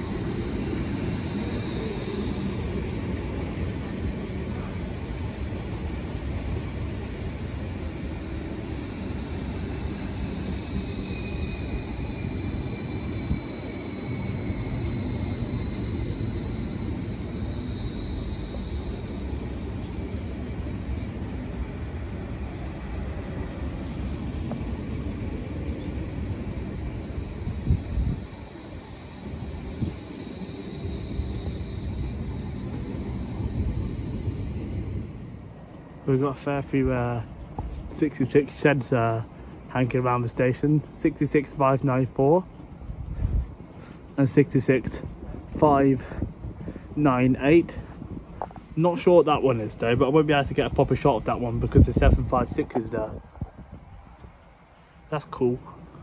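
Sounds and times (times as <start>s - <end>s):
train engines rumbling: 0.0s - 56.0s.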